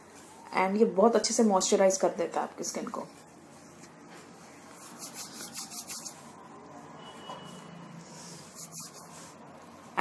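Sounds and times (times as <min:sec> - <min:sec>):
hands rubbing skin: 0:04.6 - 0:06.3, 0:08.2 - 0:09.4.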